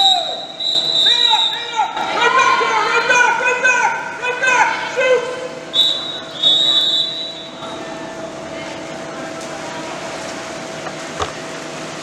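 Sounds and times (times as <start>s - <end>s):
referee's whistle blasts: 0.0s - 1.9s, 5.7s - 7.6s
steady hum: 0.0s - 12.0s.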